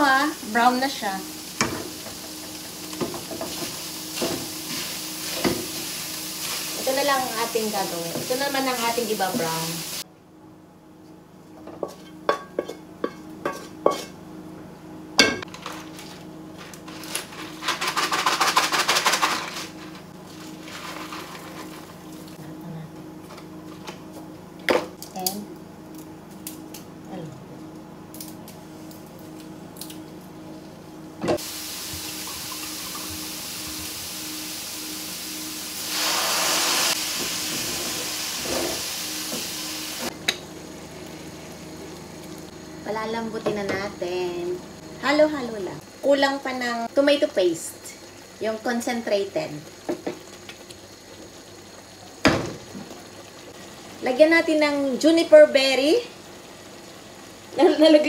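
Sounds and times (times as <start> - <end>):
food sizzling in hot pan: 0.0 - 10.0, 31.4 - 58.0.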